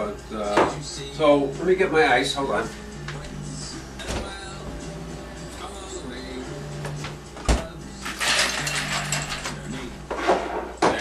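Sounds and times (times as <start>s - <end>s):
ice cubes rattling: 8.0s - 9.6s.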